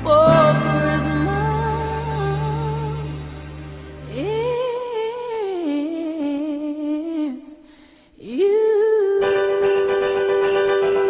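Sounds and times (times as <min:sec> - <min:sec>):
woman singing long note: 0:00.0 - 0:03.5.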